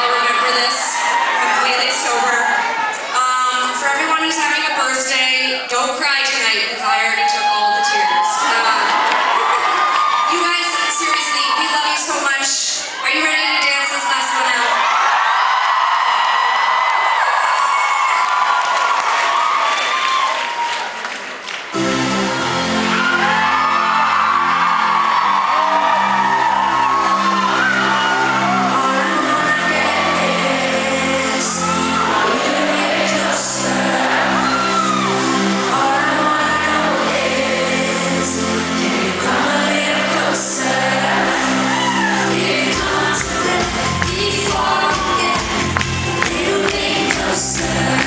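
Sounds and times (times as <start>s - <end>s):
faint crowd noise: 0.0s - 18.0s
band with synth and bass: 21.8s - 48.0s
woman singing: 28.4s - 34.6s, 35.6s - 48.0s.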